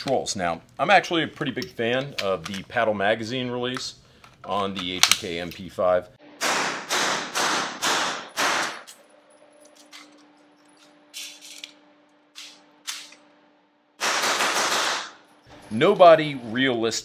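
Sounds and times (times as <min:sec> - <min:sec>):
suppressed gunshots: 0:06.4 - 0:08.8, 0:14.0 - 0:15.2.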